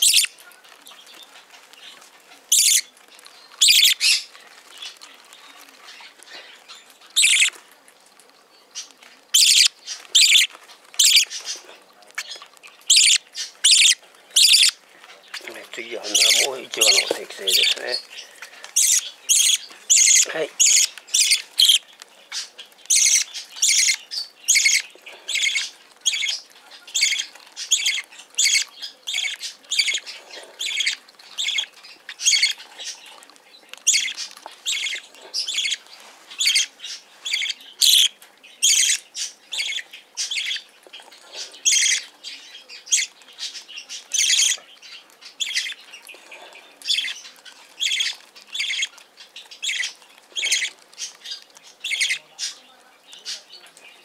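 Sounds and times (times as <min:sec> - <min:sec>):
bird chick begging calls: 0:00.0 - 0:00.4, 0:02.5 - 0:02.9, 0:03.6 - 0:04.2, 0:07.2 - 0:07.6, 0:09.4 - 0:11.3, 0:12.9 - 0:14.8, 0:15.4 - 0:21.8, 0:22.9 - 0:26.4.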